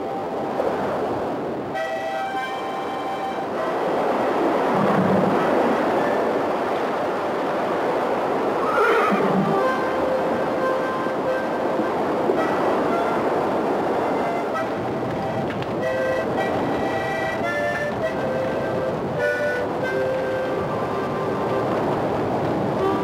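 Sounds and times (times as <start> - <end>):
steady noisy wash: 0.0 - 23.0
background music: 1.7 - 4.0, 9.5 - 21.9
horses neighing: 8.6 - 9.6.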